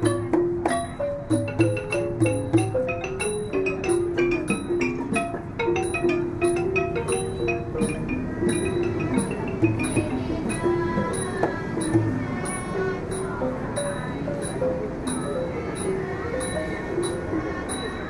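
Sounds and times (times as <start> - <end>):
xylophone melody: 0.0 - 18.0.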